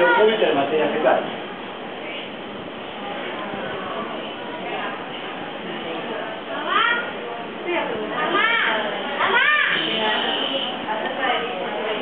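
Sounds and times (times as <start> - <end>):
murmur of voices: 0.0 - 12.0
children calling out: 8.2 - 10.9.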